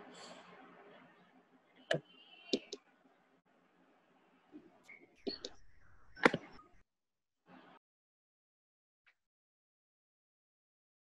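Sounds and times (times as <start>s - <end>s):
faint background noise: 0.0s - 6.8s.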